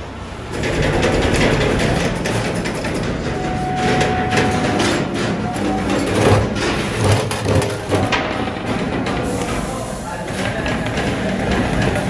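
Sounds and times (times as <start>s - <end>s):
machine rumble: 0.0s - 12.0s.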